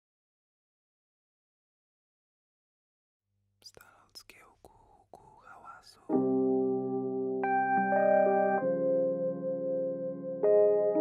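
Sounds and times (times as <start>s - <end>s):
faint whispering voice: 3.6s - 6.1s.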